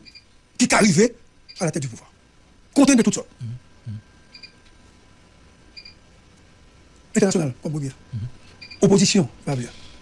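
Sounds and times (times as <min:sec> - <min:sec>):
background hiss and hum: 0:00.0 - 0:10.0.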